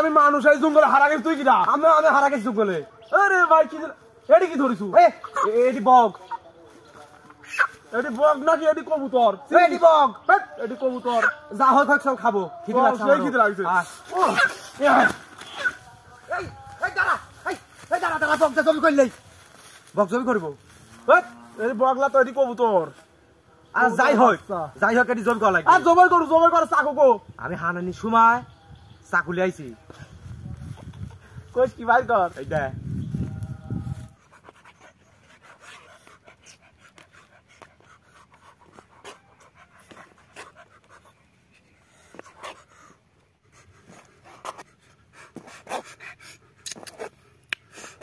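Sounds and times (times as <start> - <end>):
chicken clucking: 5.2 - 6.5.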